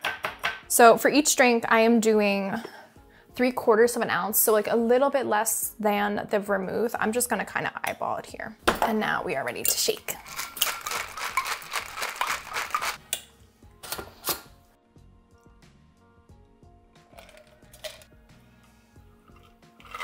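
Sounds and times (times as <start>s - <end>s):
soft background music: 0.0s - 20.0s
ice rattling in cocktail shaker: 9.7s - 13.0s, 17.1s - 18.1s.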